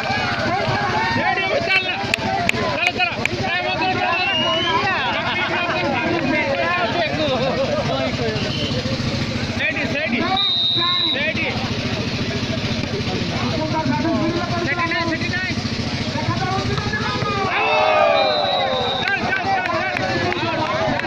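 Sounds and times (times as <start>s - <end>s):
crowd talking and shouting: 0.0s - 21.0s
whistle blast: 4.0s - 5.0s, 8.3s - 8.9s, 10.2s - 11.4s, 17.8s - 19.3s.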